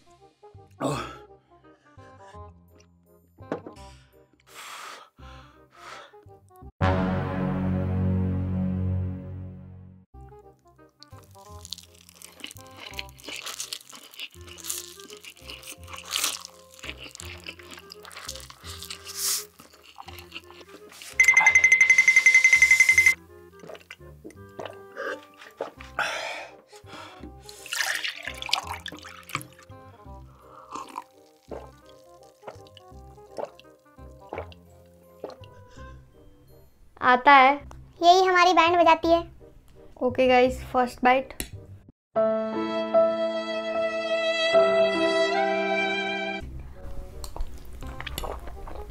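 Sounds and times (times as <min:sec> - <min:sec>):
soft background music: 0:00.0 - 0:48.9
person slurping noodles: 0:14.2 - 0:21.2, 0:27.4 - 0:29.6, 0:30.3 - 0:34.6.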